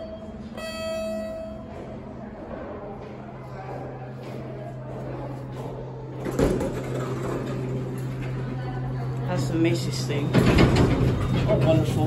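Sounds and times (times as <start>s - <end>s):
steady low hum: 0.0s - 12.0s
elevator doors sliding: 6.0s - 12.0s
elevator door clunk: 6.2s - 8.4s, 10.2s - 12.0s.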